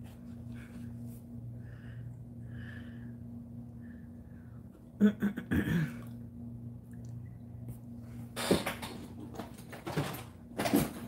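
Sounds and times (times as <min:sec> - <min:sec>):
steady low hum: 0:00.0 - 0:11.0
quiet breaths: 0:00.4 - 0:04.8.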